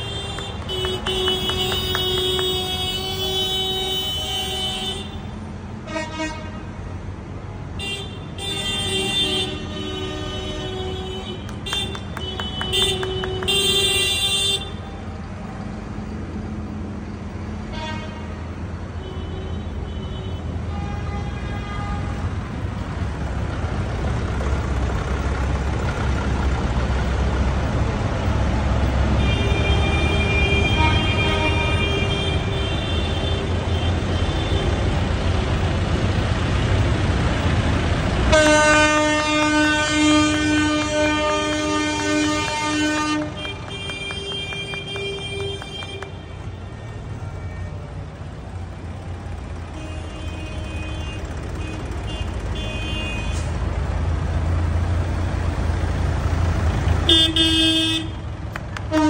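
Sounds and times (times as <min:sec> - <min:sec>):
hand clapping: 0:00.0 - 0:03.0, 0:11.4 - 0:14.1, 0:43.2 - 0:46.2, 0:58.5 - 0:59.0
vehicle horns honking: 0:00.0 - 0:06.8, 0:07.7 - 0:15.2, 0:17.7 - 0:22.4, 0:29.2 - 0:35.0, 0:38.3 - 0:48.1, 0:49.6 - 0:53.7, 0:57.0 - 0:59.0
vehicles driving past: 0:00.0 - 0:59.0.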